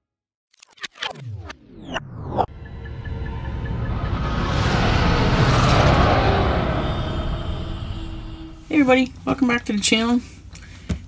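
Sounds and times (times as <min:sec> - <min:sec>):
rumbling whoosh: 0:02.0 - 0:09.1.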